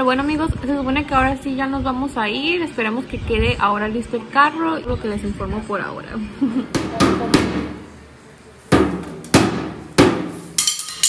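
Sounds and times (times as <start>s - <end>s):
metallic jangle: 10.6s - 11.0s.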